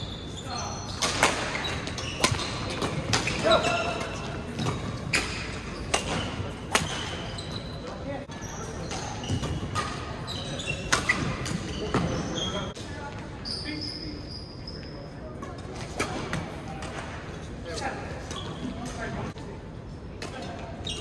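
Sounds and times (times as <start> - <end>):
sneakers squeaking on court floor: 0.0 - 16.6, 17.8 - 19.2, 20.7 - 21.0
racquet hitting shuttlecock: 4.6 - 7.2.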